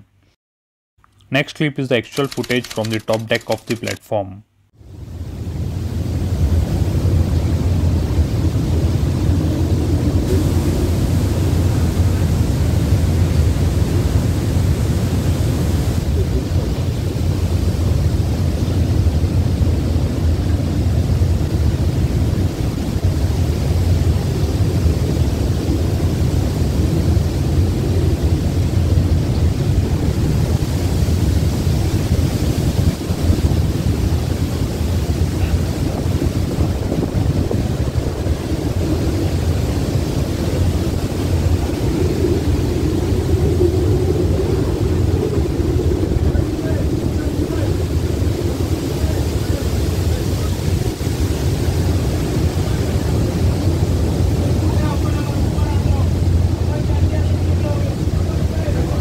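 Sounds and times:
heavy waves breaking: 4.9 - 59.0
wind buffeting microphone: 5.4 - 59.0.

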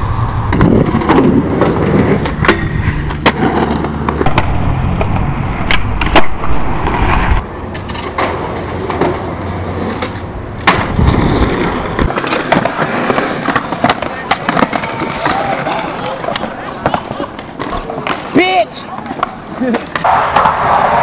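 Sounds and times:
skateboard wheels rolling on concrete: 0.0 - 21.0
skateboard clacking on ground: 0.5 - 6.4, 7.4 - 21.0.

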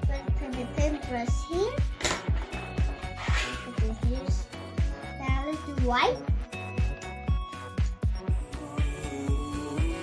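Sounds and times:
background music with drum beat: 0.0 - 10.0.

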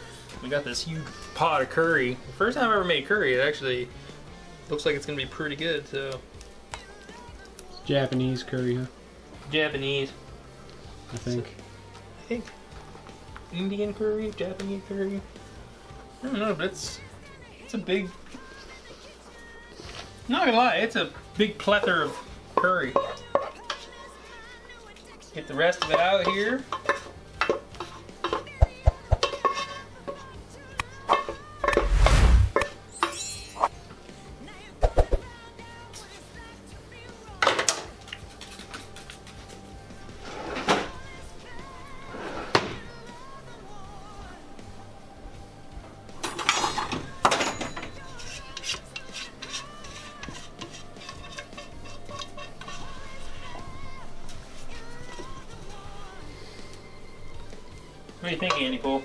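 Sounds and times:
background music: 0.0 - 59.0
utensil scraping cooking pot: 25.7 - 30.4, 31.0 - 32.9, 38.2 - 41.2, 41.8 - 42.8, 46.6 - 57.7.

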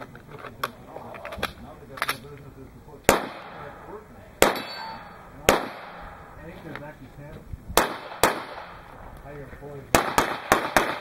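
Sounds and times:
pistol shots with echo: 3.1 - 3.8, 4.4 - 6.3, 7.8 - 8.9, 9.9 - 11.0.

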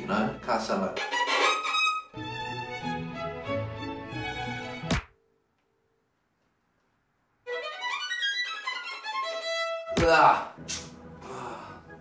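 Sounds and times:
violin staccato notes: 1.0 - 2.9.

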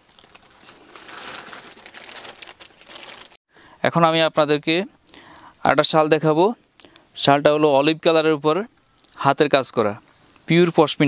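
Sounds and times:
crinkling and rustling handling: 0.0 - 3.4.

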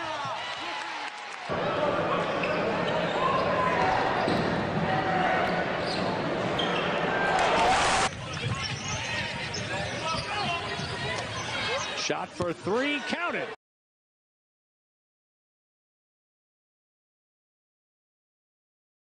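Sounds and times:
arena crowd noise: 0.0 - 13.6
basketball court sounds: 1.5 - 13.1.

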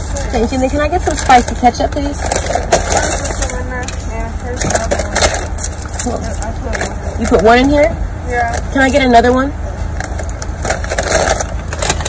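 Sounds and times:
idling car engine hum: 0.0 - 12.0
paper bag crinkling: 10.0 - 12.0.

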